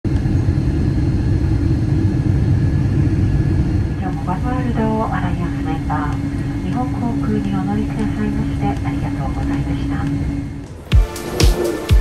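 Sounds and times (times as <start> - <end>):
low rumble of airport noise: 0.1 - 10.8
steady hum: 0.1 - 12.0.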